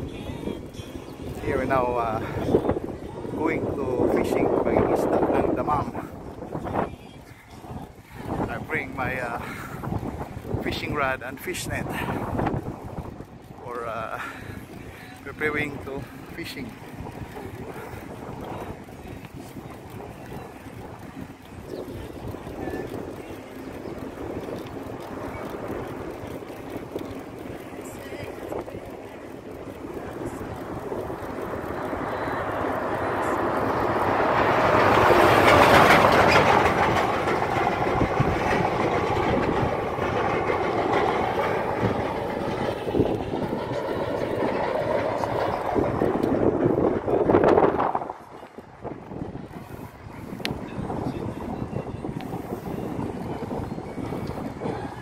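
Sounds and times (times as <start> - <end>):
traffic noise: 0.0 - 55.0
heavy truck passing: 20.4 - 55.0.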